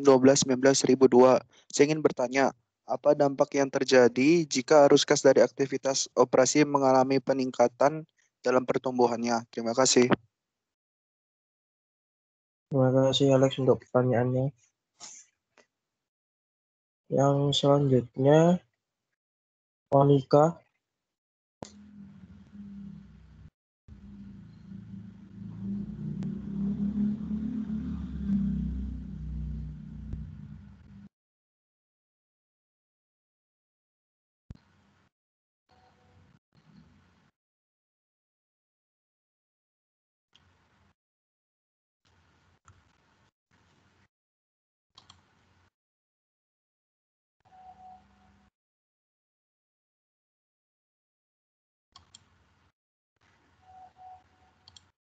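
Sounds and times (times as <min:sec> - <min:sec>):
low rumble: 0:23.9 - 0:31.1
faint clicks: 0:45.0 - 0:45.2, 0:54.6 - 0:54.9
faint short tone: 0:47.5 - 0:48.4, 0:53.6 - 0:54.4.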